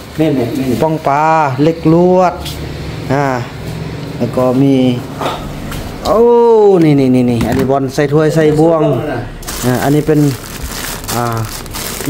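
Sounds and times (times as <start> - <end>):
plastic bag crinkling: 9.4 - 12.0.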